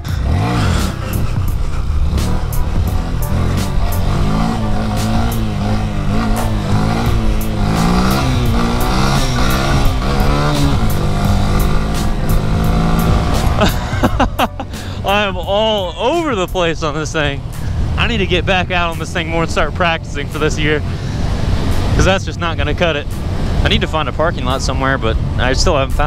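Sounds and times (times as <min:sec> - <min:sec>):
music with steady beat: 0:00.0 - 0:16.7
motorcycle engine revving: 0:00.0 - 0:26.0
riding rumble: 0:00.0 - 0:26.0.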